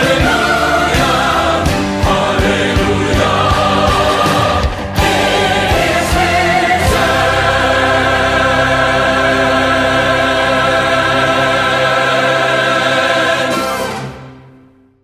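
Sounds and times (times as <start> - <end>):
choir and orchestra chord: 0.0 - 15.0.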